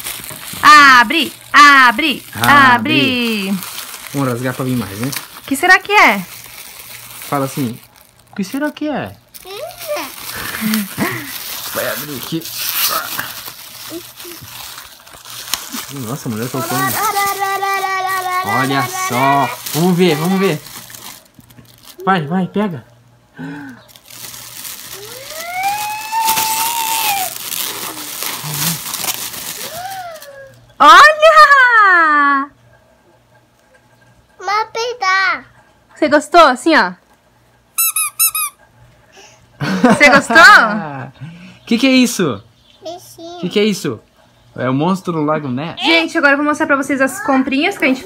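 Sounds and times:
gift wrapping rustling: 0.0s - 22.8s, 23.4s - 30.8s
woman talking: 0.6s - 3.6s, 5.5s - 6.3s, 30.8s - 32.5s, 45.8s - 48.0s
squeaky toy squeaks: 37.8s - 38.6s.

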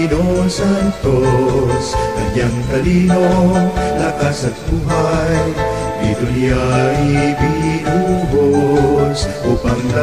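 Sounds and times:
instrumental backing: 0.0s - 10.0s
person singing a song: 0.0s - 10.0s.

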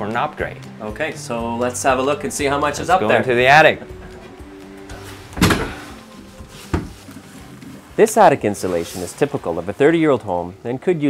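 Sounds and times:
soft background music: 0.0s - 11.0s
attic hatch knocking open: 5.3s - 6.0s, 6.7s - 7.0s.

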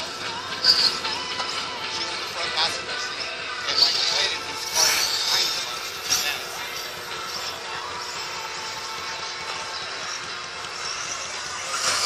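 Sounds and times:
rc buggies whirring: 10.1s - 12.0s.

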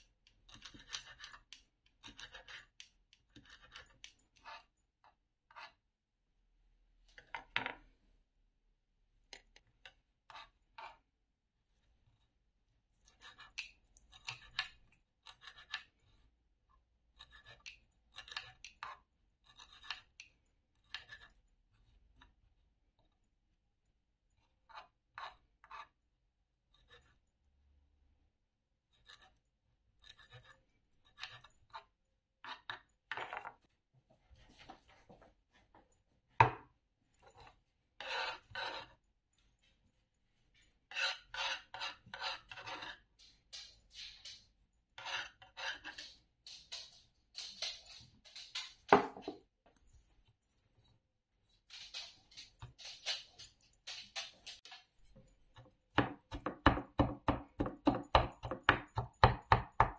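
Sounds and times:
knife scraping chopped herbs: 0.5s - 4.8s, 13.0s - 15.9s, 17.2s - 20.2s, 30.0s - 31.8s, 37.4s - 39.0s, 40.8s - 43.1s, 45.0s - 46.2s
knife chopping herbs on wooden board: 56.0s - 59.9s.

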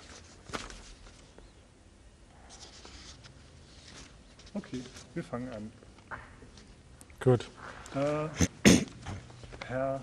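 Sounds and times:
faint rustling and handling: 0.0s - 1.7s, 2.3s - 8.3s, 9.0s - 10.0s.

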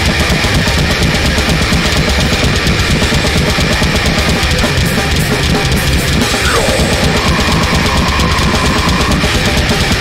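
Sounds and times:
extreme metal band playing: 0.0s - 10.0s
rapid kick drum: 0.0s - 10.0s.

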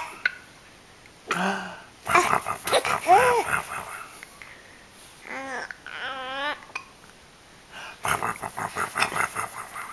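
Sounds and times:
baby laughing: 2.1s - 3.9s.

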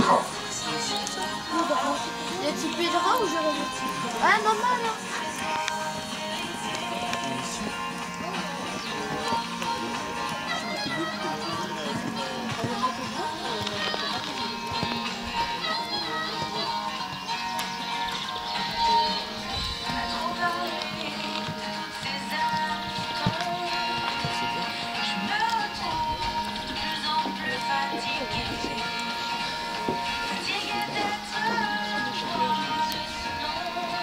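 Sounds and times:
horse hoofbeats on sand: 0.0s - 32.6s
music playing: 0.0s - 34.0s.

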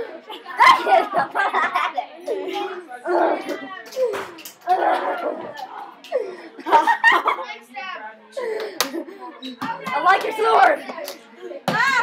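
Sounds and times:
girls' voices: 0.0s - 12.0s.

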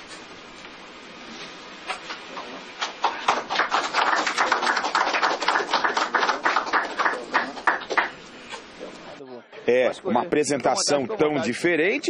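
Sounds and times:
people applauding: 2.3s - 8.2s.

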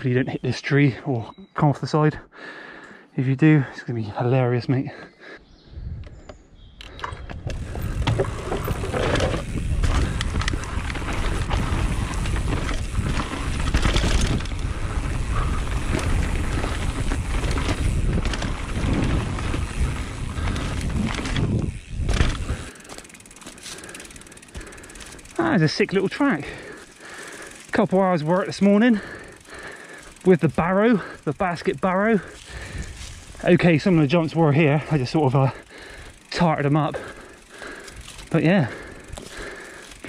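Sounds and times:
bike rattling and clicking: 6.1s - 40.0s
bike tyres rumbling on dirt: 7.3s - 40.0s.

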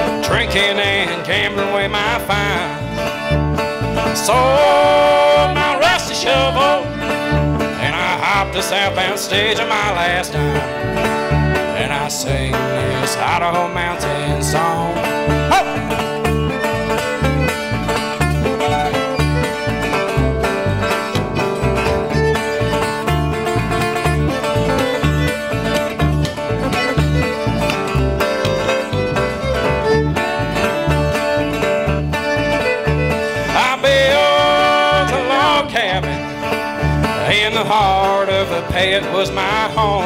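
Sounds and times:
bluegrass string band playing: 0.0s - 40.0s
plucked upright bass: 0.0s - 40.0s.

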